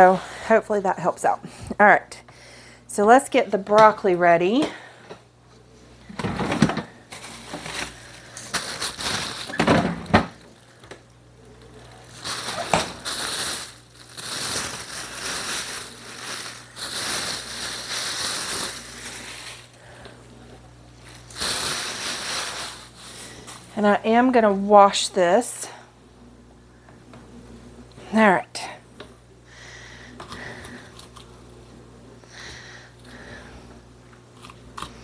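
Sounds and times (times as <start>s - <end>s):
broccoli rustling: 7.1s - 9.7s, 10.3s - 20.0s, 21.0s - 23.8s.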